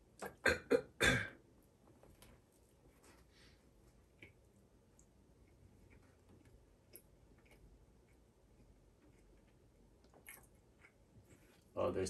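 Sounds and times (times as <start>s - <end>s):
man chewing crunchy food: 5.8s - 11.7s.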